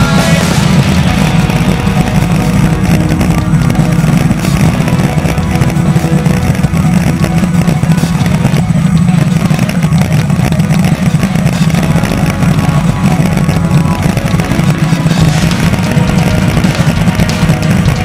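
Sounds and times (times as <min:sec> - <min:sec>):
music playing: 0:00.0 - 0:18.0
speedboat engine drone: 0:00.0 - 0:18.0.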